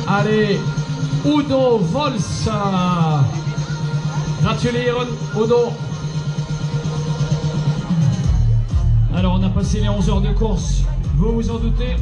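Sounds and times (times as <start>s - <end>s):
instrumental music with drums and bass: 0.0s - 12.0s.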